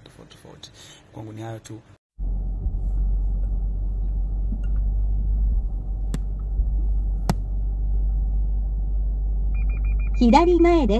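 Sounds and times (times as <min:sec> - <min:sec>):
low rumble: 0:02.2 - 0:10.9
high beeps: 0:09.6 - 0:10.4.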